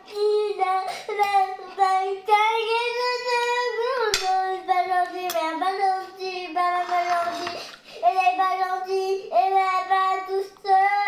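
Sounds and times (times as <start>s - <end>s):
girl crying in a sing-song wail: 0.0s - 5.0s, 5.6s - 11.0s.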